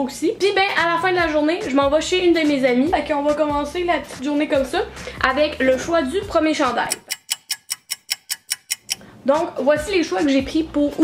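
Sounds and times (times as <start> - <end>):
rapid clock ticking: 6.7 - 9.0.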